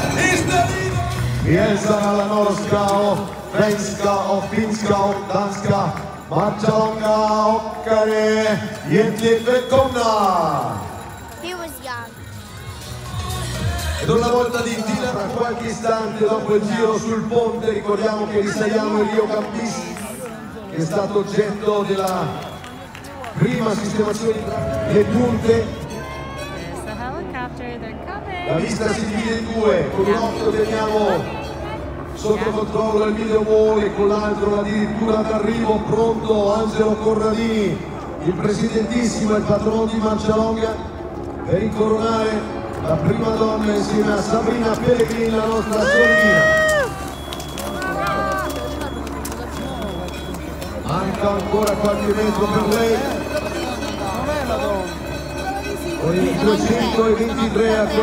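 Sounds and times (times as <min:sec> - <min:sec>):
announcer over loudspeaker: 0:00.0 - 0:58.0
low outdoor crowd din: 0:00.0 - 0:58.0.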